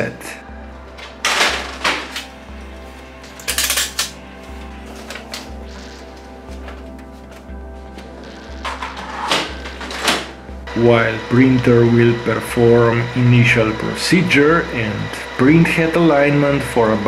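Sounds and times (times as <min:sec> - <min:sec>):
background music with steady beat: 0:00.0 - 0:17.0
paper handling: 0:02.1 - 0:10.4.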